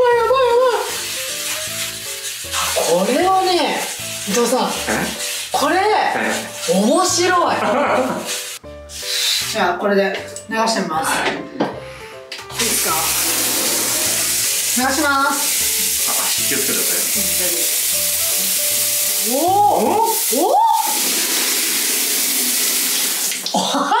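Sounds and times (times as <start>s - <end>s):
shower head spraying water: 0.1s - 9.6s, 12.5s - 23.5s.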